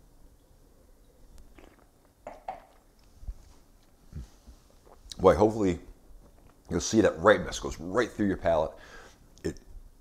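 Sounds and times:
person sipping wine: 1.0s - 5.2s
wet mouth sounds: 1.4s - 5.2s.

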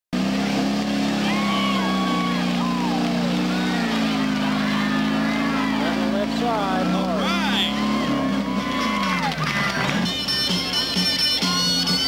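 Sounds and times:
off-road vehicle engine revving: 0.1s - 12.0s
people calling out: 0.5s - 12.0s.

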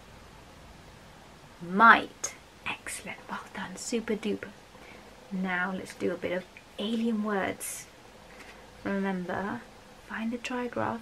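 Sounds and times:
woman whispering: 2.2s - 4.5s, 9.3s - 11.0s.

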